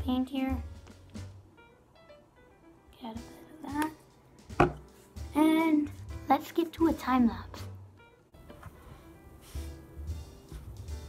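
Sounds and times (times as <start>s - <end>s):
knock on tabletop: 4.5s - 4.9s.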